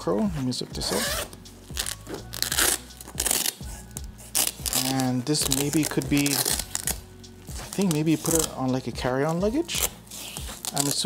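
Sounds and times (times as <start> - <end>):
background music: 0.0 - 11.0
zipper being pulled closed: 0.8 - 3.7.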